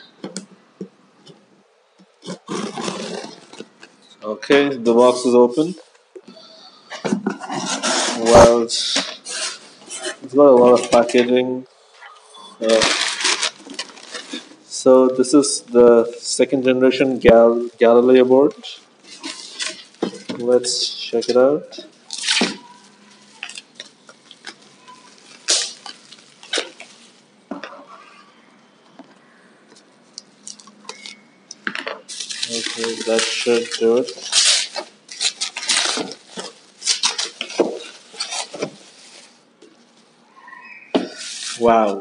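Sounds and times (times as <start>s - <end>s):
bubble wrap crinkling: 2.2s - 4.0s, 12.6s - 27.4s, 31.8s - 40.2s
cardboard box rustling and scraping: 2.3s - 3.7s.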